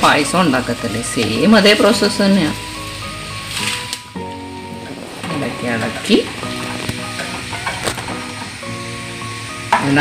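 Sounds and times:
background music of held notes: 0:00.0 - 0:10.0
milk sizzling in steel pot: 0:00.0 - 0:10.0.

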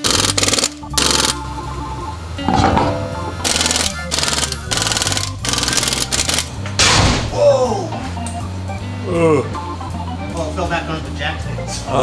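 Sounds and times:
background music: 0:00.0 - 0:12.0
impact wrench rattling: 0:02.5 - 0:06.4.

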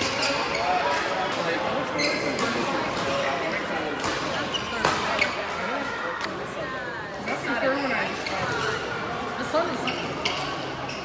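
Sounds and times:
racket hitting shuttlecock: 0:04.0 - 0:05.4.

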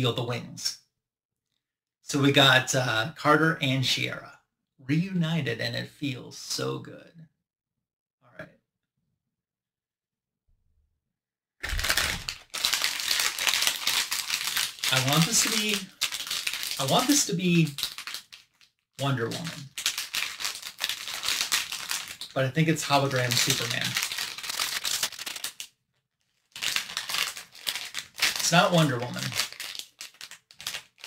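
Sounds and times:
foil bag crinkling: 0:11.6 - 0:31.0.

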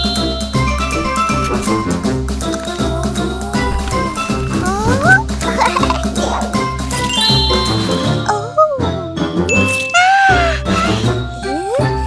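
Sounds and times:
upbeat background music: 0:00.0 - 0:12.0
bright ringing chime: 0:07.1 - 0:08.1.

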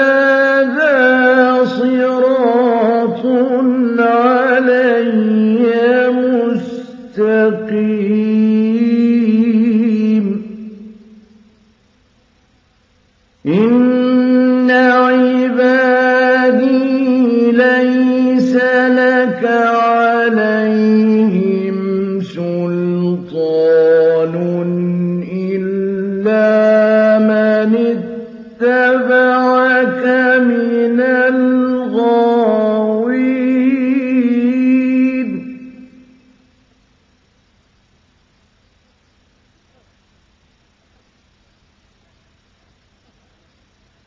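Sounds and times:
man reciting in chant: 0:00.0 - 0:10.9, 0:13.4 - 0:36.1.

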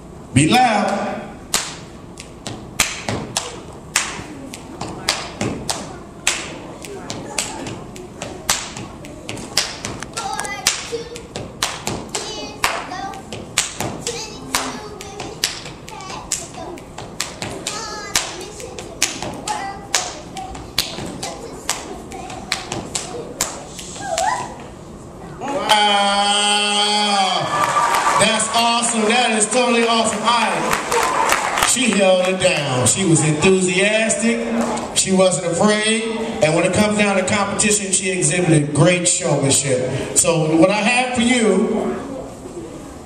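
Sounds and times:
hand claps: 0:00.9 - 0:24.4.

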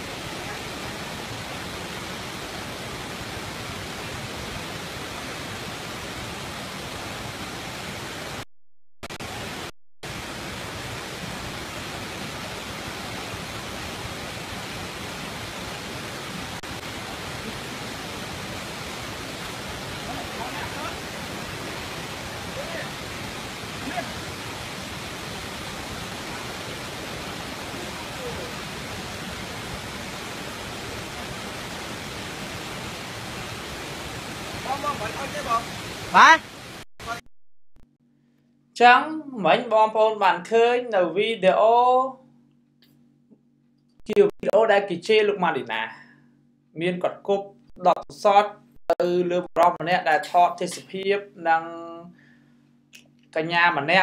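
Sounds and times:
stream water rushing: 0:00.0 - 0:08.4, 0:09.1 - 0:37.2.

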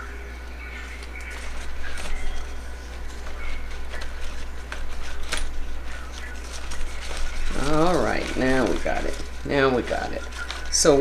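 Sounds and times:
steady low hum: 0:00.0 - 0:11.0
leaves rustling and crackling: 0:01.2 - 0:11.0.

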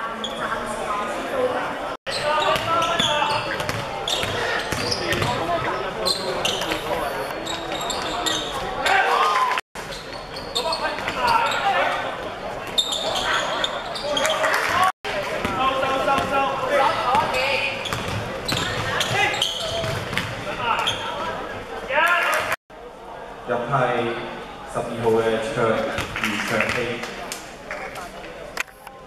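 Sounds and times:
people shouting in a hall: 0:08.7 - 0:09.6.

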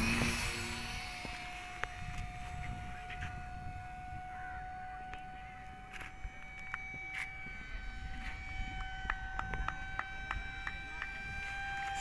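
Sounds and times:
model airplane motor whine: 0:00.0 - 0:12.0.

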